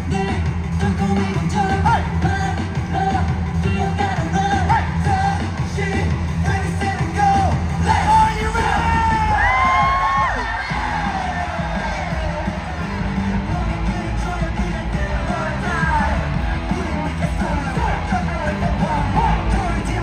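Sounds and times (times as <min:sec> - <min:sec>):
fans yelling: 0:00.0 - 0:20.0
pop music with bass and singing: 0:00.0 - 0:20.0.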